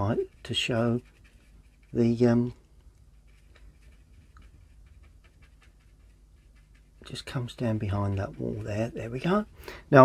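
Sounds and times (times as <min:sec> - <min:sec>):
low room hum: 0:00.0 - 0:10.0
paintbrush dabbing on paper: 0:00.0 - 0:10.0.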